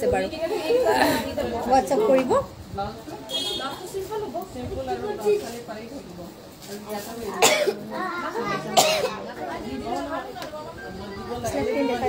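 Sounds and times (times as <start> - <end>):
person coughing: 7.4 - 7.8, 8.8 - 9.2.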